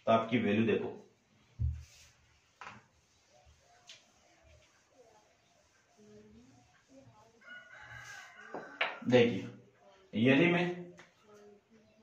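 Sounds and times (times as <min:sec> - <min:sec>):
duster wiping whiteboard: 0:01.0 - 0:09.6.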